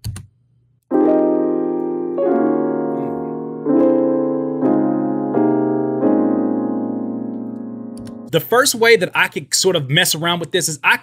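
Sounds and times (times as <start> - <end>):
piano chords: 0.9 - 9.0.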